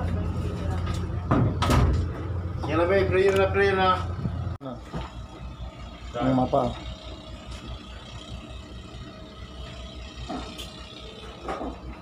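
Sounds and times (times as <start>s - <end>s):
ship machinery rumble: 0.0s - 12.0s.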